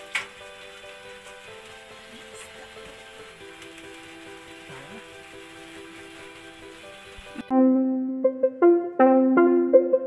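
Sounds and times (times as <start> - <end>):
steady hiss: 0.0 - 7.5
quiet background music: 0.0 - 10.0.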